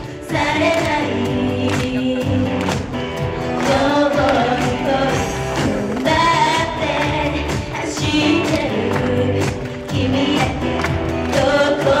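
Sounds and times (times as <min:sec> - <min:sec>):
women singing together: 0:00.0 - 0:02.9, 0:03.5 - 0:12.0
pop backing track: 0:00.0 - 0:12.0.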